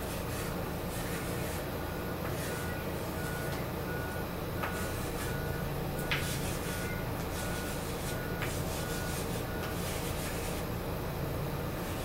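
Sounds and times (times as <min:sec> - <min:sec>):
steady low hum: 0:00.0 - 0:12.0
reversing alarm beeps: 0:02.0 - 0:09.8.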